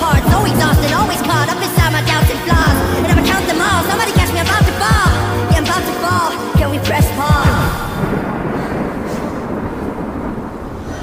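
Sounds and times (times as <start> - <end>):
dense low noise-like music: 0.0 - 7.6.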